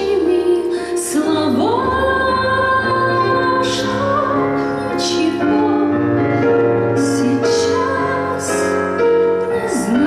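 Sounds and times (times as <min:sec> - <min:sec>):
woman singing a ballad: 0:00.0 - 0:10.0.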